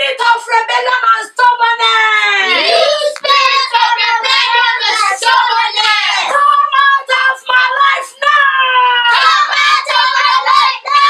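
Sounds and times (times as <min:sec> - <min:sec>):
children and women shouting a prayer: 0:00.0 - 0:11.0.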